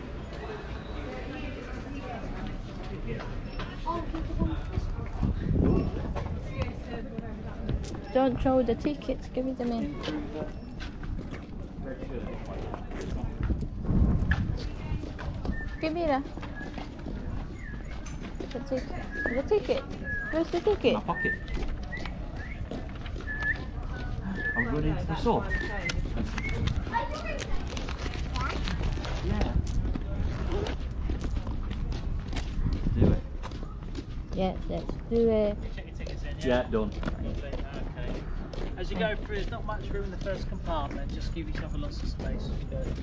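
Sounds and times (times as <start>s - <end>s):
voices of passers-by: 0.0s - 43.0s
footsteps on paving: 2.3s - 43.0s
steady low rumble: 11.5s - 18.0s.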